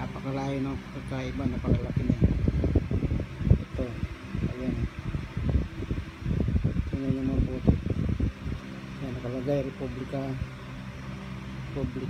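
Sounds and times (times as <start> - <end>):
person talking: 0.0 - 2.8, 6.8 - 8.2, 11.7 - 12.0
wind buffeting microphone: 0.0 - 10.6.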